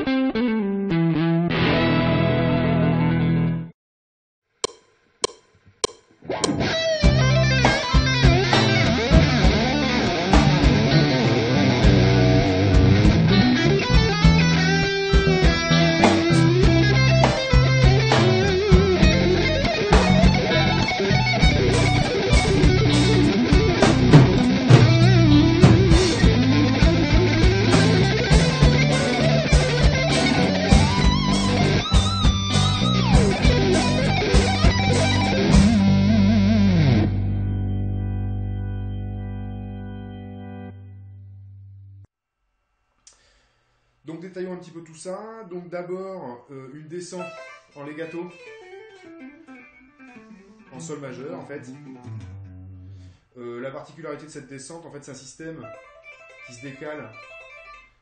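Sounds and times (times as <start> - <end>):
electric guitar lead playing: 0.0 - 3.7, 6.2 - 42.1, 47.2 - 53.2, 55.6 - 58.0
low accompanying notes: 5.2 - 42.0.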